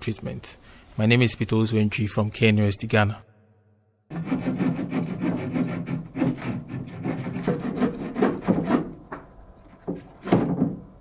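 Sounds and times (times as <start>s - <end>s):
wooden board scraping: 4.1s - 11.0s.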